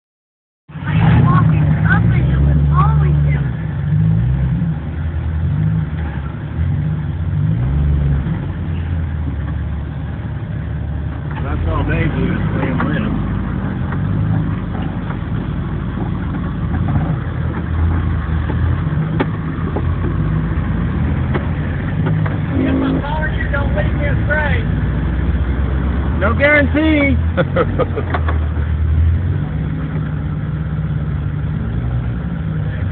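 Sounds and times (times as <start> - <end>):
off-road vehicle engine rumble: 0.7 - 32.9
indistinct voices: 22.0 - 24.8.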